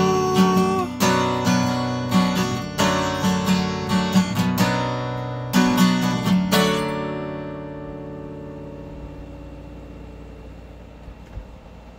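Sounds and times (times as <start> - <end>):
acoustic guitar chord ringing: 0.0 - 11.1.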